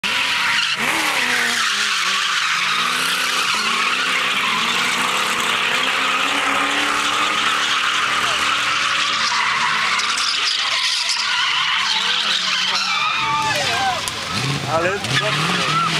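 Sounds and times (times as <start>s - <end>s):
car engines revving: 0.0s - 15.9s
tyres squealing: 0.0s - 15.9s.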